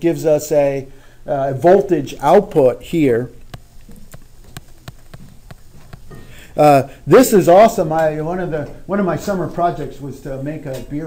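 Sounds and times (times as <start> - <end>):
stylus tapping on tablet screen: 3.4 - 6.1.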